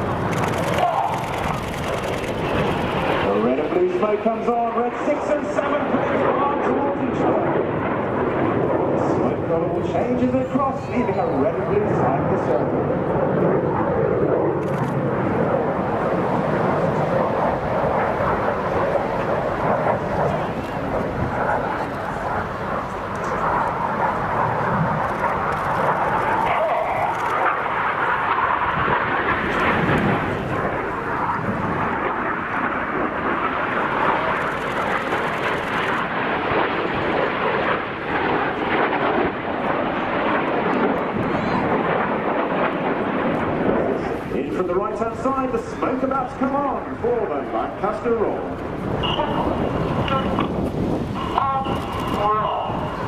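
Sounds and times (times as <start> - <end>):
jet flying past: 0.0 - 53.0.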